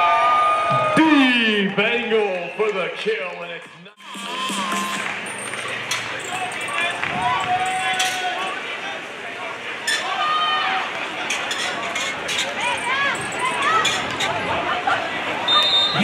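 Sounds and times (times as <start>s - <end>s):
crowd voices: 0.0s - 16.0s
music over loudspeakers: 3.6s - 6.1s.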